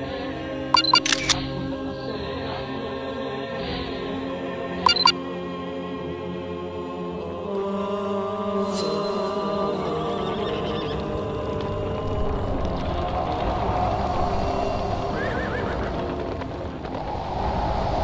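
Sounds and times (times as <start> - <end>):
rushing noise: 13.0 - 18.0.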